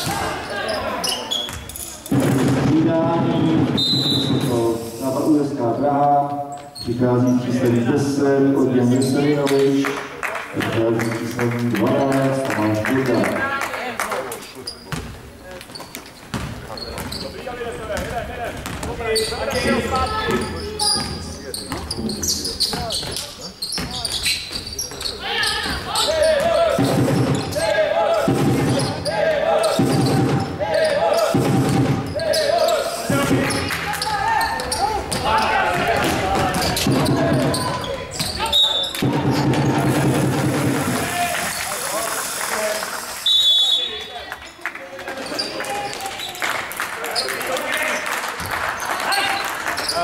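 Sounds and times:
crowd voices: 0.0 - 5.8, 6.9 - 50.0
basketball bouncing: 16.3 - 17.2, 18.0 - 21.9, 25.6 - 27.6, 29.8 - 30.5, 31.3 - 32.2, 34.6 - 38.4.

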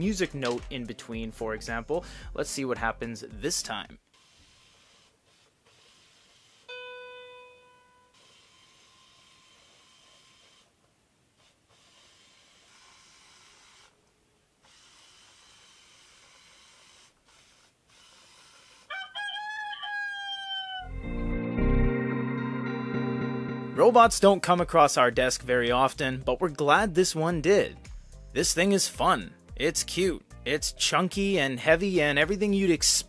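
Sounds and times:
recorded rooster crow from speaker: 18.9 - 21.0.

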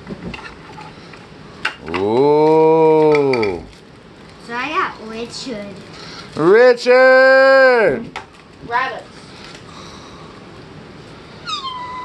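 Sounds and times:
cat meowing: 11.4 - 12.0.

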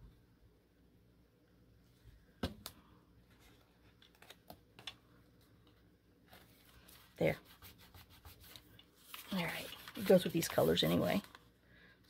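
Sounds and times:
paper crinkling: 3.4 - 5.0, 8.4 - 11.4.

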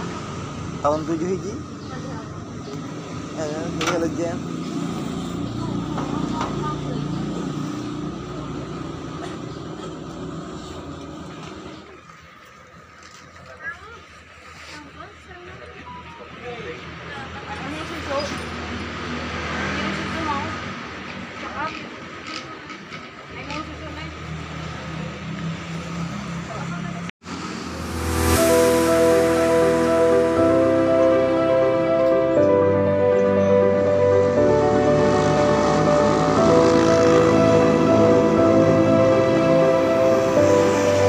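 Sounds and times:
street ambience: 0.0 - 41.0
vehicle engine running: 27.3 - 41.0.

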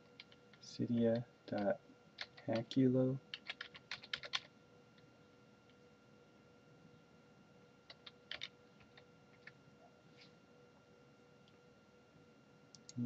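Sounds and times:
keyboard typing: 0.1 - 2.7, 3.3 - 4.5, 7.9 - 9.6.

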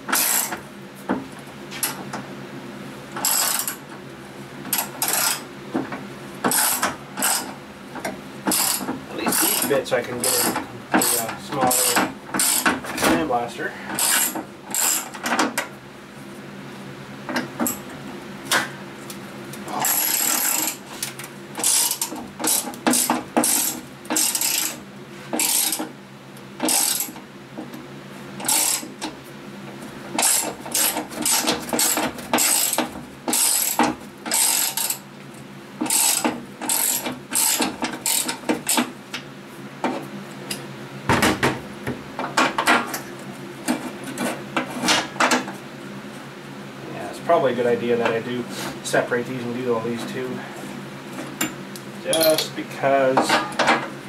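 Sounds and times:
hand ratchet clicking: 19.8 - 20.8, 25.4 - 25.9, 28.4 - 28.9, 30.2 - 35.0, 35.8 - 38.8.

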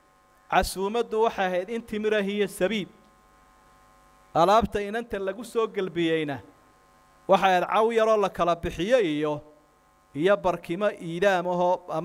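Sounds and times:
faint electrical hum: 0.0 - 12.0
man speaking over a microphone: 0.5 - 3.0, 4.4 - 6.5, 7.3 - 9.5, 10.2 - 12.0.

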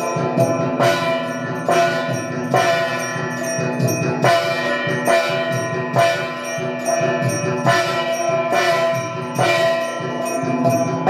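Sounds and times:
metal bells ringing: 0.0 - 11.0
rhythmic low percussion: 0.0 - 11.0.

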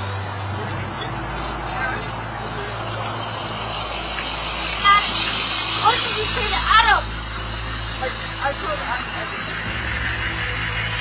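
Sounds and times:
faint voices of passers-by: 0.0 - 11.0
traffic hum: 0.0 - 11.0.

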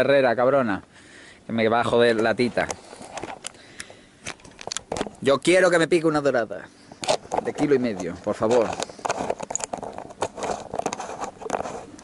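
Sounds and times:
camera handling knocks and rubbing: 2.1 - 3.6, 4.2 - 5.3, 7.0 - 12.0.

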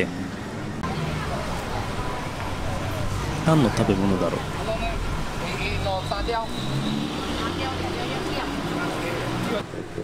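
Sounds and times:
low rumble of traffic: 0.0 - 10.0
people talking: 0.8 - 6.6, 7.3 - 10.0.

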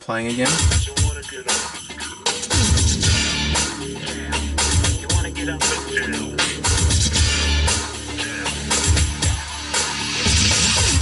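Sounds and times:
music through car stereo: 0.0 - 11.0.

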